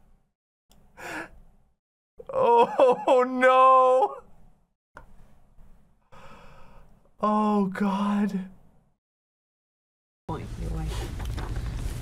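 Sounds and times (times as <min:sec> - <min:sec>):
faint breath: 0:06.1 - 0:07.0.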